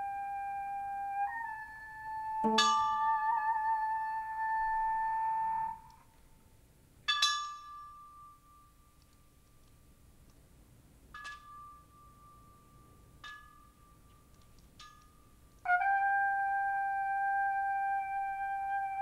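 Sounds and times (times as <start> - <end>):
wind instrument wavering note: 0.0 - 6.0, 15.6 - 19.0
bell-like tone from strikes: 2.4 - 3.4.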